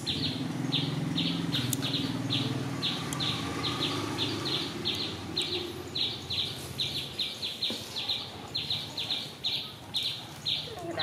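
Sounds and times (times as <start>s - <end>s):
bird chirping: 0.0s - 11.0s.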